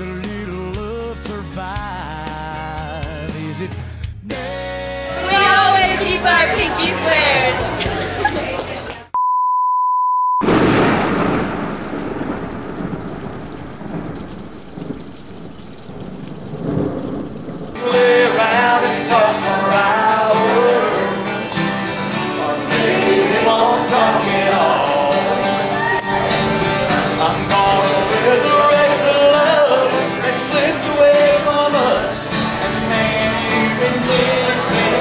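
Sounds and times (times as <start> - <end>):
person singing: 0.0 - 8.5, 17.8 - 21.6, 22.2 - 35.0
acoustic guitars: 0.0 - 9.2, 17.8 - 35.0
high electronic beep: 9.2 - 10.5
thunder: 10.4 - 17.8
rain: 10.5 - 18.5.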